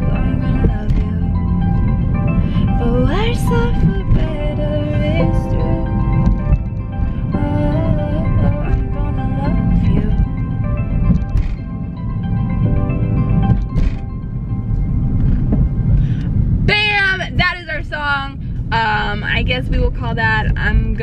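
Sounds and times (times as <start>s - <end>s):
stepped-note background music: 0.0s - 16.1s
car cabin rumble: 0.0s - 21.0s
woman's voice: 16.7s - 21.0s.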